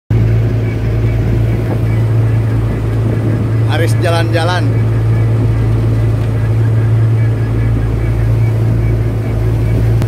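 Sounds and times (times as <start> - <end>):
boat engine droning: 0.1 - 10.0.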